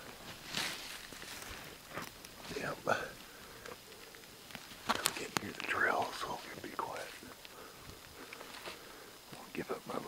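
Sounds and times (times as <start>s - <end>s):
whispered speech: 2.5s - 3.2s, 5.0s - 7.3s, 9.3s - 10.0s.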